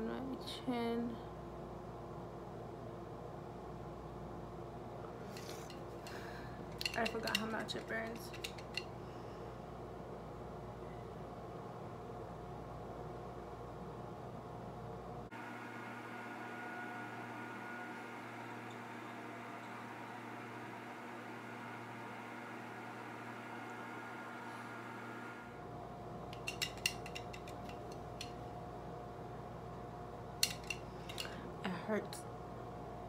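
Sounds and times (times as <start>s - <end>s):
fan humming: 0.0s - 10.6s, 15.0s - 33.0s.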